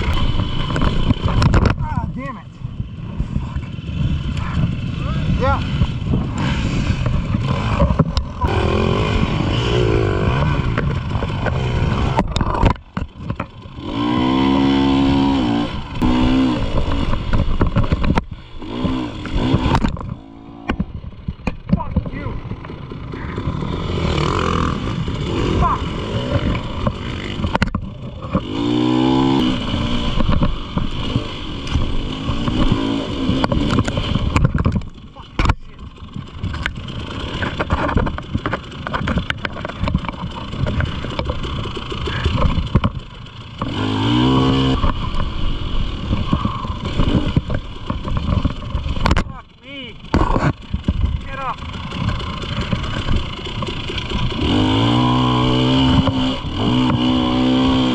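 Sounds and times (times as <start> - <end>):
bike knocking and bumping: 0.0 - 2.3, 5.4 - 8.6, 10.3 - 15.6, 16.2 - 55.0
dirt bike engine revving: 0.0 - 57.9.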